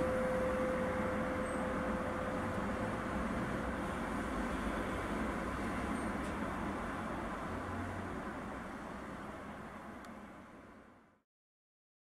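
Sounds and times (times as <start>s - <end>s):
rushing background noise: 0.0s - 10.9s.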